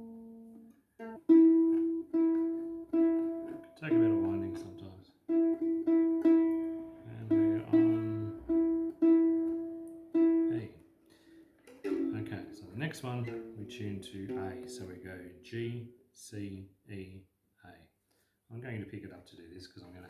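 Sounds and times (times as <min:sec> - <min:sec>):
ukulele string plucked: 0:00.0 - 0:10.8, 0:11.6 - 0:15.5.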